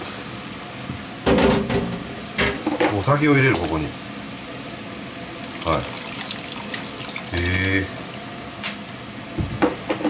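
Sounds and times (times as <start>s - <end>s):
water boiling: 2.0s - 9.4s.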